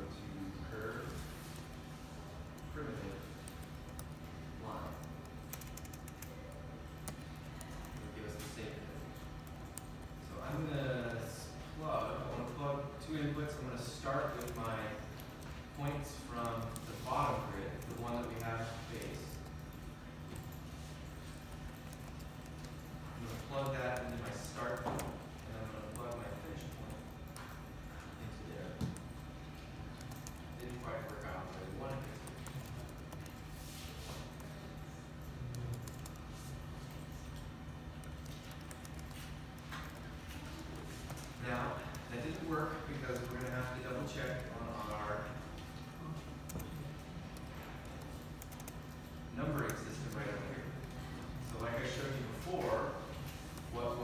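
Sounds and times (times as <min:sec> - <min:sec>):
person talking: 0:10.2 - 0:19.5, 0:23.2 - 0:27.3, 0:30.3 - 0:33.2, 0:40.4 - 0:48.0, 0:49.3 - 0:54.0.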